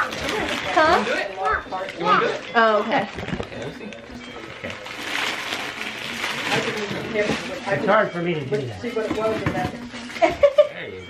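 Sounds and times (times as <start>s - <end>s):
paper and cardboard rustling: 0.0s - 1.4s, 4.7s - 8.1s.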